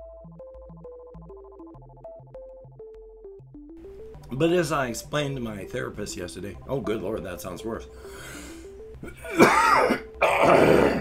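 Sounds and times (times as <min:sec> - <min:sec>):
man clearing throat: 0:09.0 - 0:11.0
man coughing: 0:09.0 - 0:11.0.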